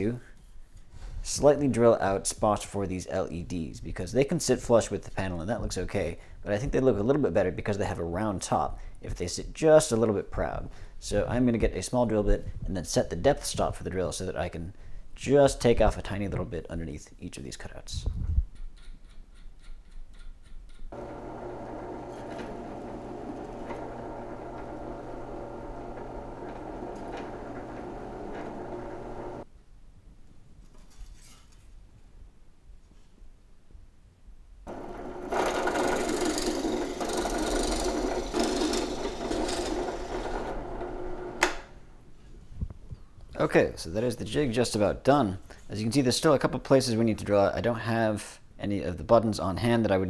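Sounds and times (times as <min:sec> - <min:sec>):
drill press motor running: 0:21.0 - 0:29.4, 0:34.7 - 0:41.7.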